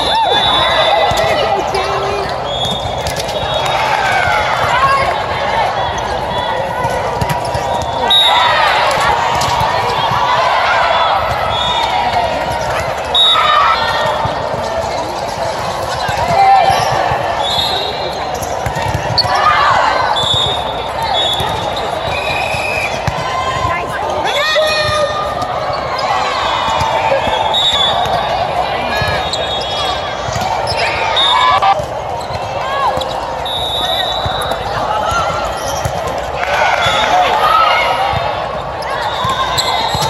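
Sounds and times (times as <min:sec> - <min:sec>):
volleyballs hit and bouncing: 0:00.0 - 0:33.4, 0:34.0 - 0:40.0
players shouting: 0:00.0 - 0:40.0.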